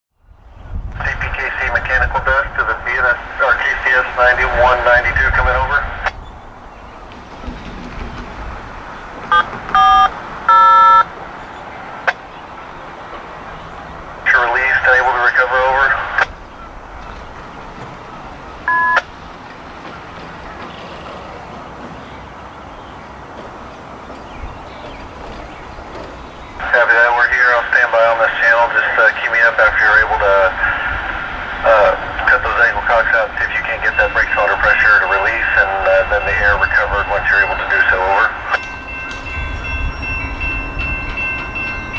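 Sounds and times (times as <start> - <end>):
steady low rumble: 0.2 - 10.1, 26.5 - 38.6
radio voice: 1.0 - 6.1, 14.2 - 16.3, 26.6 - 31.0, 31.6 - 38.6.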